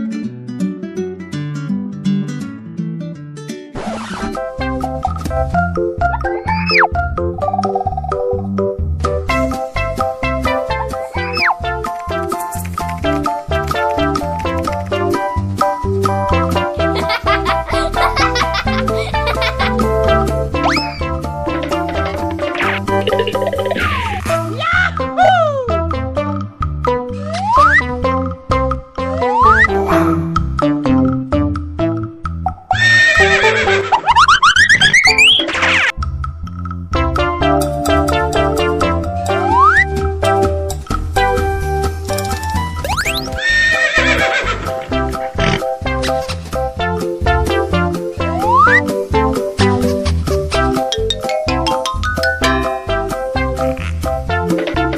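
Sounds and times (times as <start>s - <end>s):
bouncy children's music: 4.2s - 54.9s
rising pitch glide: 29.1s - 30.6s, 39.3s - 40.1s, 48.2s - 48.9s
horse whinny: 32.8s - 33.8s, 43.3s - 45.6s.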